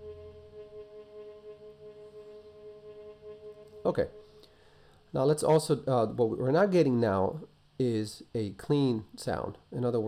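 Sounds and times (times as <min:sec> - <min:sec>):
sustained viola note with reverb: 0:00.0 - 0:04.6.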